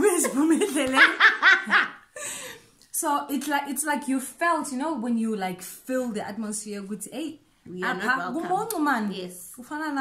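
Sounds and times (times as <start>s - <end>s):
women laughing: 0.0s - 2.3s.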